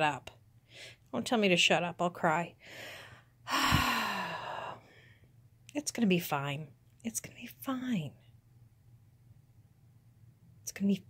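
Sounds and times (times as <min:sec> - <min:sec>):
woman sighing: 0:03.5 - 0:04.8.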